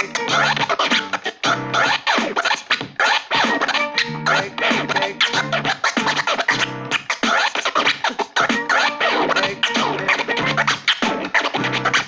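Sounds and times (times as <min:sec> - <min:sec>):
turntable scratching sample: 0:00.0 - 0:12.0.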